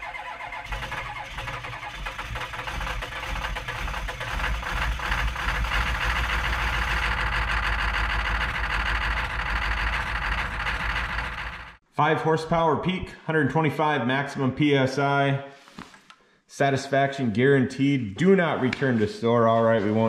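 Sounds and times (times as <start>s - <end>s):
machine motor pulsing hum: 0.7s - 11.8s.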